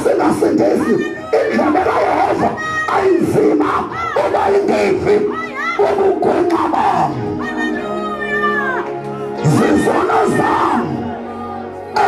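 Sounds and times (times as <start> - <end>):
crowd shouting and chanting: 0.0 - 12.0.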